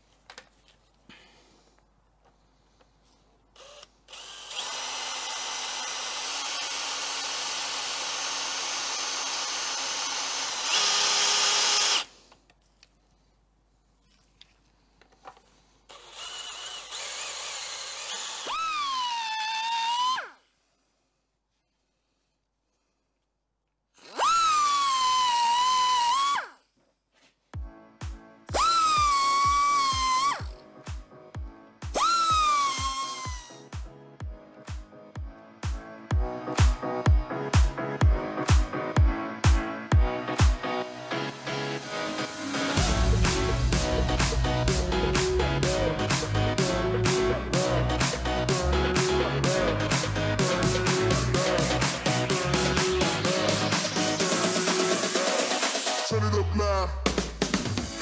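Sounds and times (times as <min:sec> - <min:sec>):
electric drill drilling: 0:03.6 - 0:12.1, 0:15.9 - 0:20.3, 0:24.0 - 0:26.5, 0:28.5 - 0:30.5, 0:31.9 - 0:33.8
music with kick-drum beat: 0:27.6 - 0:40.6, 0:42.5 - 0:56.1, 0:57.1 - 0:58.0.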